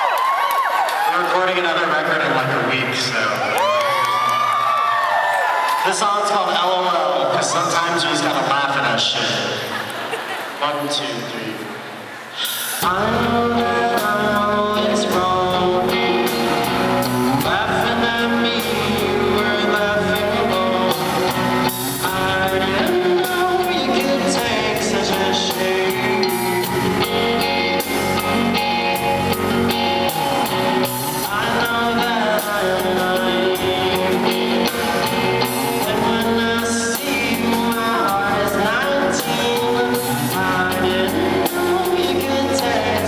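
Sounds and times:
drums: 11.9s - 43.0s
person singing: 12.4s - 43.0s
electric guitar: 12.8s - 43.0s.

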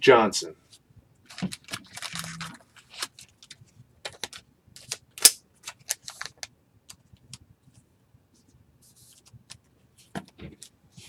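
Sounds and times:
foil wrapper crinkling and tearing: 1.3s - 6.5s.

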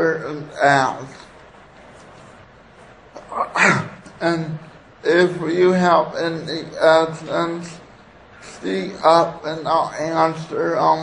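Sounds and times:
man clearing throat: 3.2s - 4.6s.

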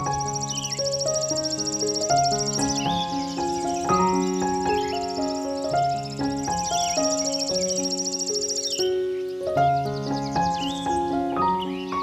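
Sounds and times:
insect trill: 0.0s - 11.9s
birds chirping: 0.0s - 12.0s
slow solo piano: 0.0s - 12.0s.

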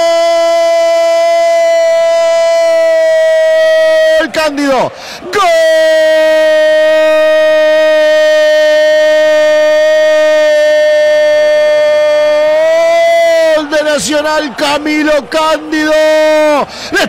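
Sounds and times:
commentator speaking: 2.0s - 6.5s, 12.8s - 17.0s.

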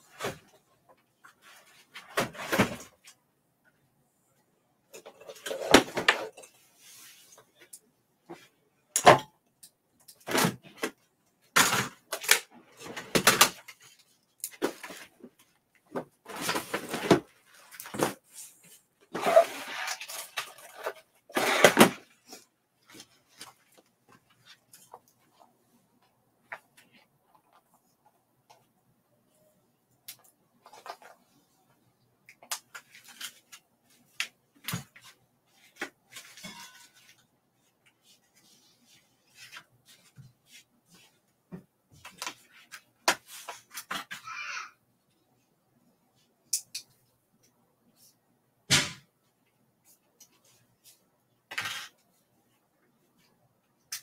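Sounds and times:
rustling of craft supplies: 0.0s - 9.2s, 9.9s - 54.0s.

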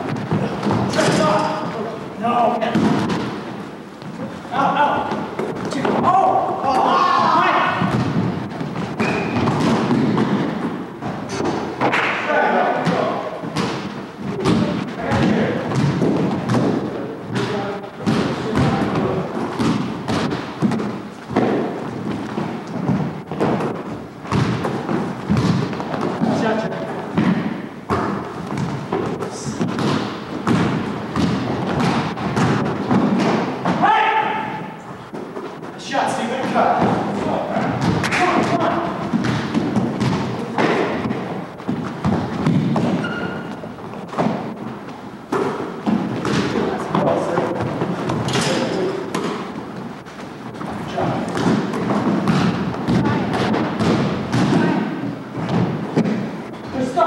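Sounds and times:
players running on floor: 0.0s - 57.0s
basketball bouncing on hardwood: 7.7s - 11.6s, 12.8s - 26.4s, 27.2s - 33.8s, 36.7s - 44.5s, 45.3s - 47.0s, 50.6s - 54.8s.

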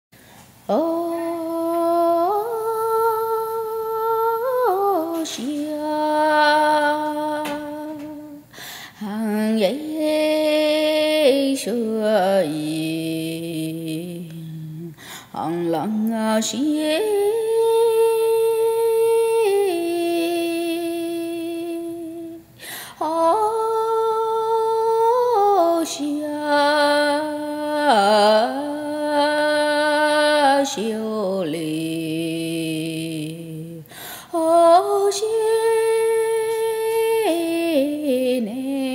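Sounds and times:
quick breath: 8.5s - 9.0s.

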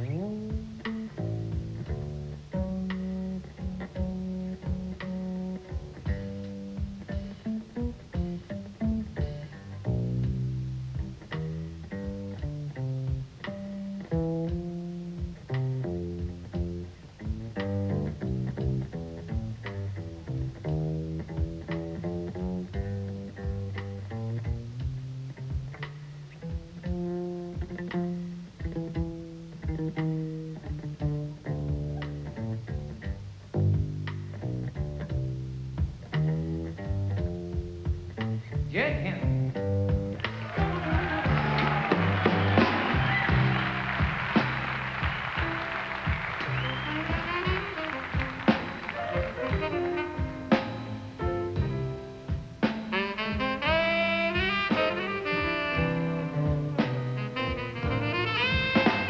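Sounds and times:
double bass plucked notes: 0.0s - 59.0s.

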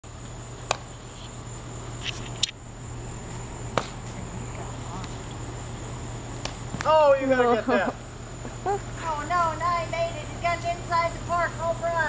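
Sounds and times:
insects trilling: 0.0s - 12.0s
low hum: 0.0s - 12.0s.

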